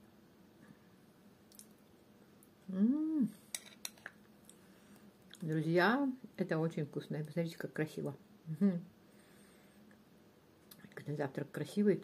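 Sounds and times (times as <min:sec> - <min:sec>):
woman humming mm: 0:02.7 - 0:03.4, 0:08.5 - 0:08.9.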